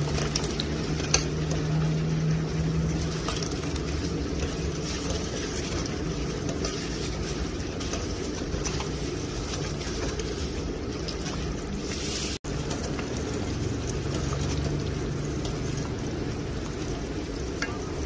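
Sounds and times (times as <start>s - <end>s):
thick liquid sloshing: 0.0s - 18.0s.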